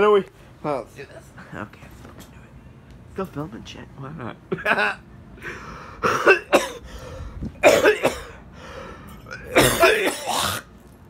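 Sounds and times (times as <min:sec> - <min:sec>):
man coughing: 0:06.0 - 0:06.8, 0:07.6 - 0:08.4, 0:09.3 - 0:10.7.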